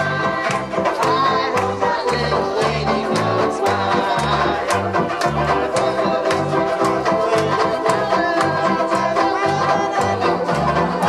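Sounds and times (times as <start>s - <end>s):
banjo ukuleles strummed: 0.0s - 11.0s
voices singing along: 0.0s - 11.0s.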